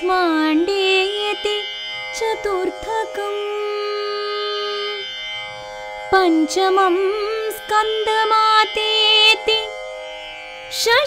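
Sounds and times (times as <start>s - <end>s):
instrumental drone: 0.0s - 11.0s.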